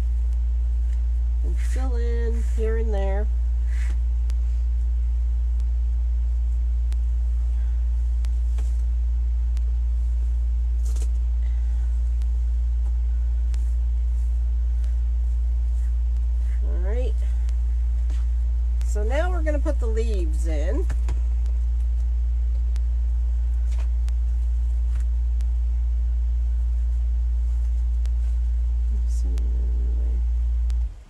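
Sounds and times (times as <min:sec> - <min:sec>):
steady low hum: 0:00.0 - 0:31.0
ribbon rustling and tapping: 0:09.6 - 0:11.3, 0:23.5 - 0:25.1.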